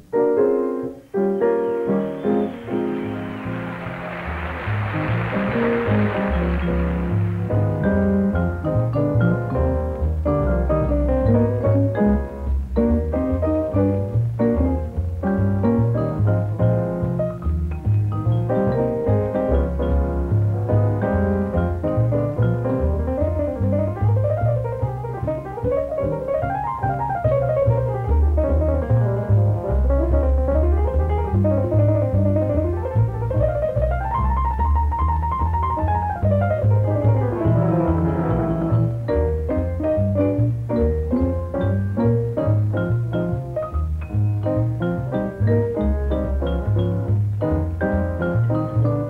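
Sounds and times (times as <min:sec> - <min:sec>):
jazz piano runs: 0:00.0 - 0:49.0
low bass line: 0:03.5 - 0:49.0.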